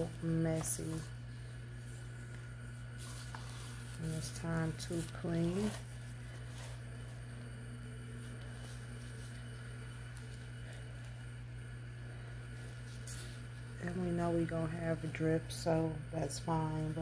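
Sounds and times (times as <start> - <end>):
faint wiping rustles: 0.0 - 15.7
electric motor humming: 0.0 - 17.0.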